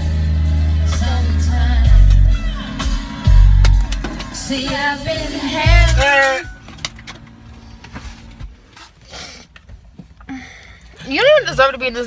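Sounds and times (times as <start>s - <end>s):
low rumble inside car: 3.2s - 12.0s.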